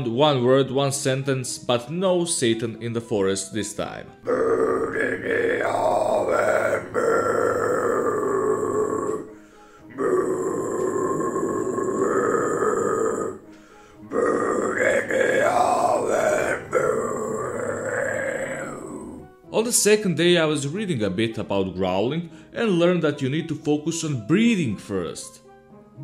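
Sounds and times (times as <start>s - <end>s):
man growling: 4.2s - 13.5s, 14.1s - 19.3s.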